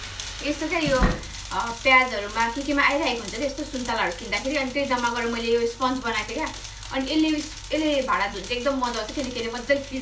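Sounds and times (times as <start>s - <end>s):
steady hiss: 0.0s - 10.0s
woman talking: 0.4s - 10.0s.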